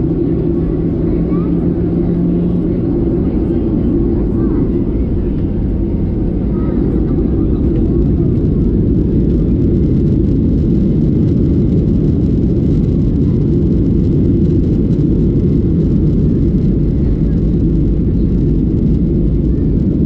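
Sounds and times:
jet engines rumbling in cabin: 0.0s - 20.0s.

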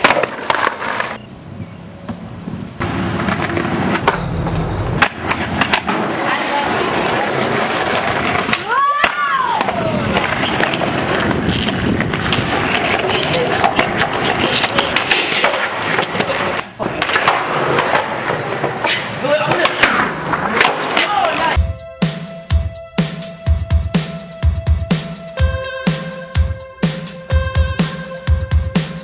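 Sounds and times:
skateboard clack: 0.0s - 1.2s, 2.8s - 21.6s
skateboard wheels rolling on concrete: 0.0s - 21.6s
person shouting: 8.6s - 10.1s
electronic music with heavy bass: 21.6s - 29.0s.

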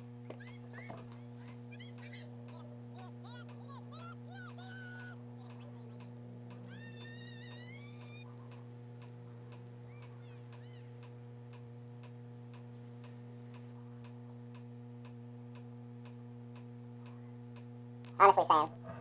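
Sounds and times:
low electrical hum: 0.0s - 19.0s
faint regular ticking: 1.8s - 18.4s.

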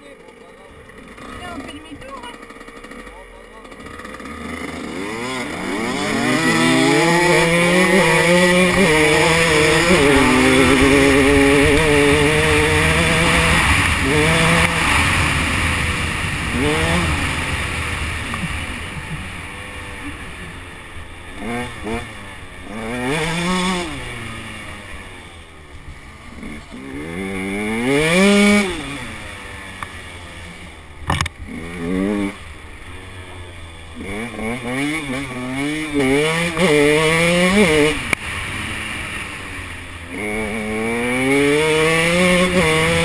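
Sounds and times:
dirt bike engine revving: 0.0s - 43.0s.

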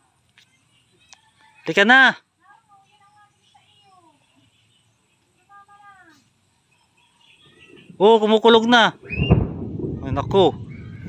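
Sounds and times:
low rumble of thunder: 9.0s - 11.0s.

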